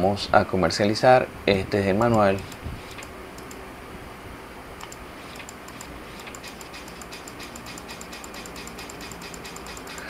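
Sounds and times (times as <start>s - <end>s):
computer mouse clicking: 2.0s - 3.6s, 4.8s - 10.0s.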